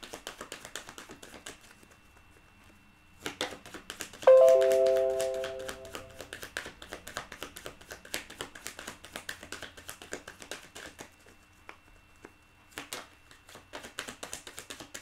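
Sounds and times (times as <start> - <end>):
bell-like chime: 4.3 - 6.2.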